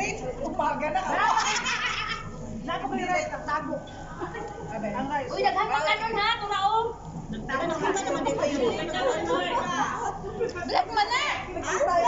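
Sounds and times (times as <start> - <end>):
people chatting: 2.6 - 12.0.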